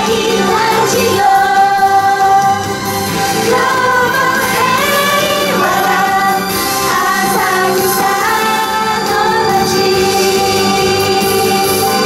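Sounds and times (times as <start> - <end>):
girls singing pop song: 0.0 - 12.0
instrumental backing: 0.0 - 12.0.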